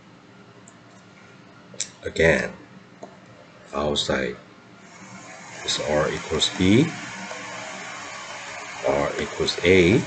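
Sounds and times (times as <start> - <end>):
steady background hiss: 0.0 - 10.0
man's voice: 5.7 - 7.0, 8.8 - 10.0.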